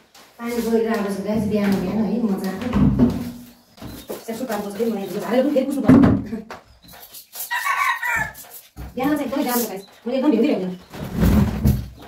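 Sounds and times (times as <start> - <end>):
person talking: 0.4 - 3.2, 4.2 - 6.5, 9.0 - 10.7
rooster crowing: 7.5 - 8.4.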